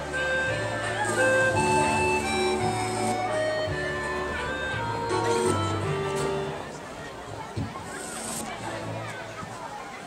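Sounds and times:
instrumental music over loudspeakers: 0.0 - 6.8.

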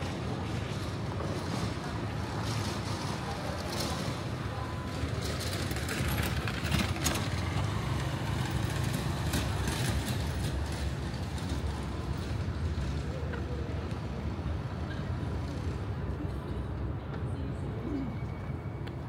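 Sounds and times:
city street noise: 0.0 - 19.0
distant traffic: 0.0 - 19.0.

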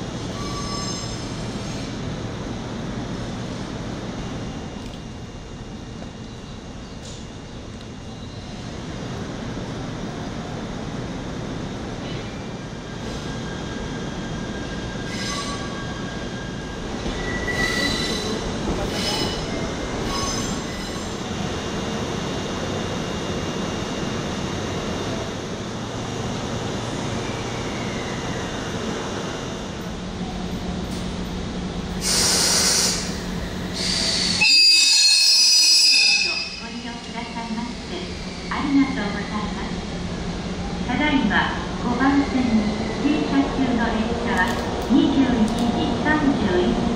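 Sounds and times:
train rolling rumble: 0.0 - 46.9
wheel and brake squeals: 0.3 - 2.0, 15.0 - 16.0, 17.1 - 21.2.

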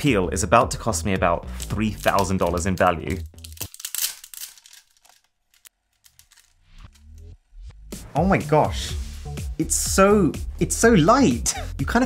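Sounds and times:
plastic film peeling and crinkling: 1.5 - 7.2.

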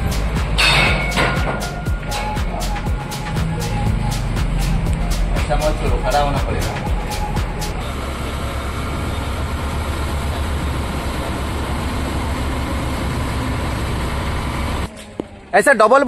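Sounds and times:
background music: 0.0 - 8.0
boat engine running: 0.0 - 14.9.

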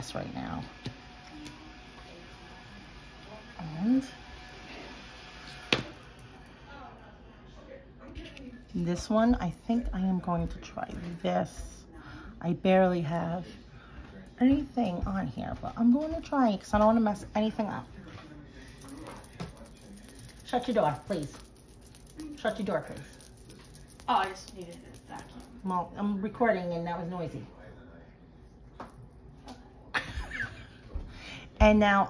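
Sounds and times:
low household background noise: 0.0 - 32.0.

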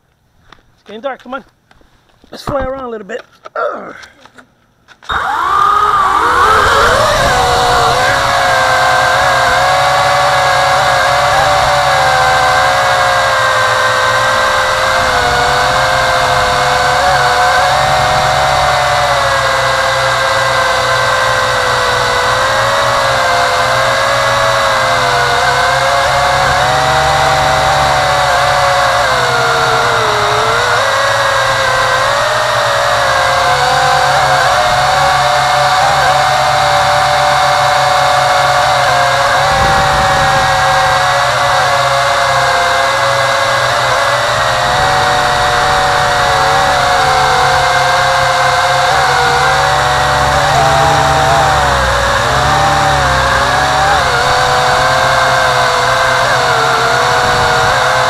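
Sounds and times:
quadcopter motors whining: 5.0 - 58.0.

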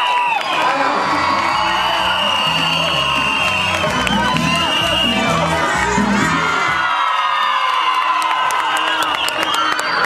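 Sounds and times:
children shouting and cheering: 0.0 - 10.0
music with low beat: 1.9 - 6.8
hand claps: 3.4 - 4.7, 7.9 - 10.0.

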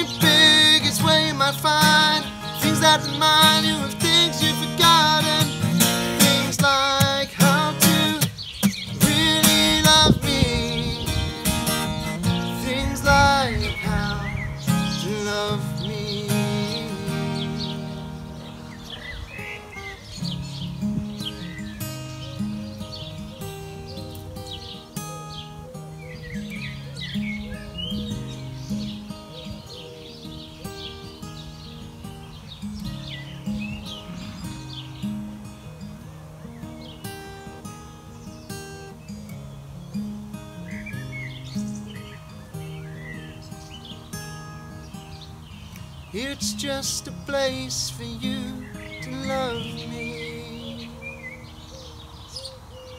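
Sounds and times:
acoustic guitar playing: 0.0 - 52.9
birds chirping: 0.0 - 52.9.

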